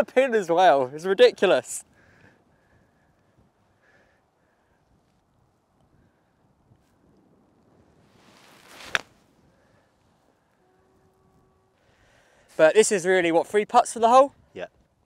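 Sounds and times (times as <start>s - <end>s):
golf club swish: 8.1s - 9.3s
club striking sand and ball: 8.2s - 9.2s.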